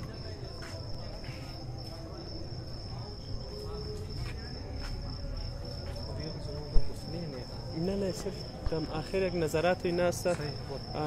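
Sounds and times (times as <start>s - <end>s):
cricket chirring: 0.0s - 11.0s
faint voices: 0.0s - 11.0s.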